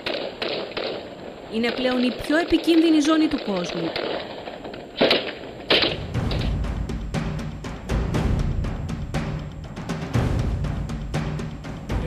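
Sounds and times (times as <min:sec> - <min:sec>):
gunshots: 0:00.0 - 0:07.7.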